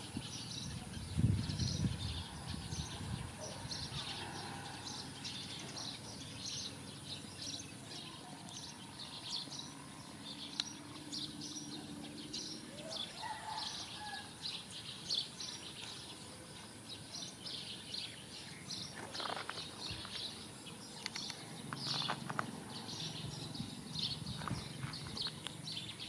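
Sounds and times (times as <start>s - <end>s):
small birds chirping: 0.0s - 26.0s.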